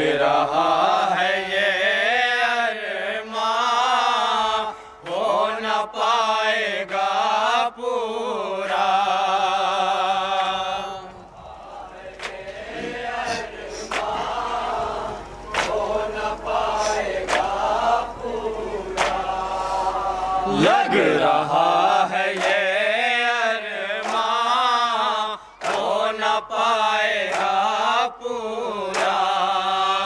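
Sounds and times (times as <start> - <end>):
men reciting lament through pa: 0.0 - 30.0
man singing long wavering lines: 12.8 - 26.7.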